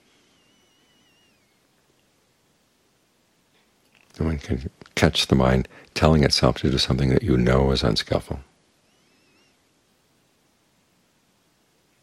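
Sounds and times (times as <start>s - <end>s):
thin high drawn-out call: 0.0s - 1.7s, 8.8s - 9.7s.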